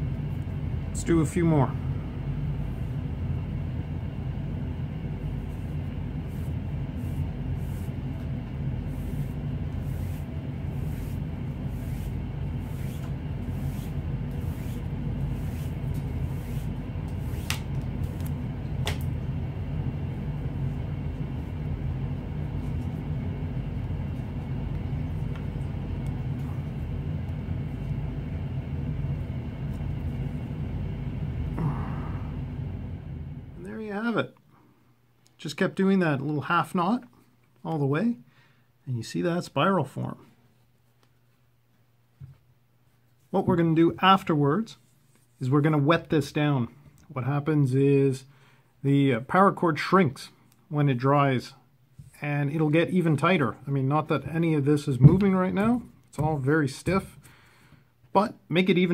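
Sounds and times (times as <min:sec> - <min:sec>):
low hum with constant tones: 0:00.0 - 0:58.9
cord rustling through wraps: 0:05.3 - 0:19.2.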